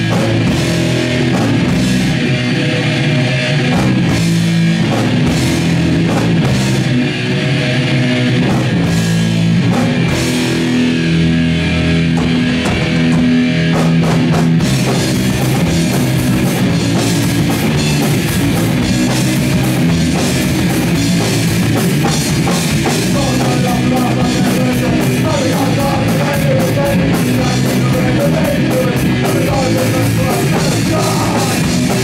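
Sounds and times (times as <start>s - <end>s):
drum and cymbal beat: 0.0s - 7.0s, 11.9s - 32.0s
bass guitar: 0.0s - 32.0s
electric guitar chords: 0.0s - 32.0s.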